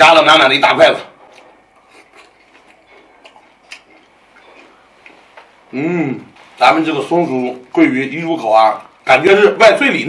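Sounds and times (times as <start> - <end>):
chewing crisp fried fish: 1.1 - 6.6.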